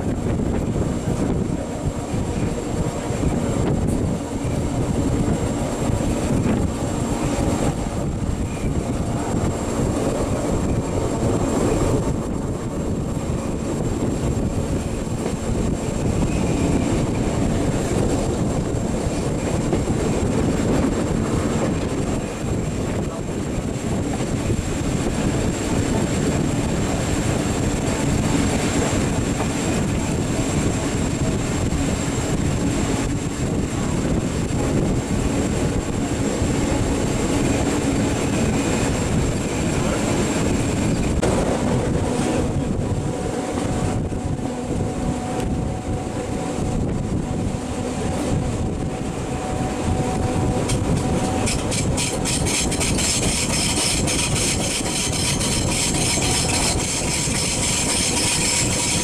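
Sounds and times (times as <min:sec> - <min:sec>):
train wheels and motors rumbling: 0:00.0 - 0:59.0.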